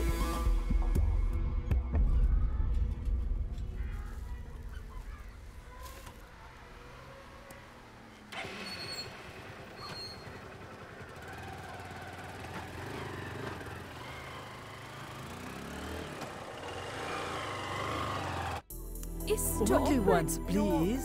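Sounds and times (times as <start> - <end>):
street traffic: 2.3 - 18.7
motorcycle engine pulling away: 5.7 - 18.7.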